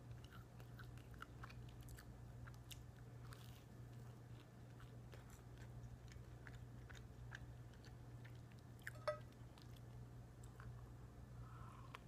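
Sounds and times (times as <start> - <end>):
person chewing toast: 0.0 - 10.8
steady low hum: 0.0 - 12.0.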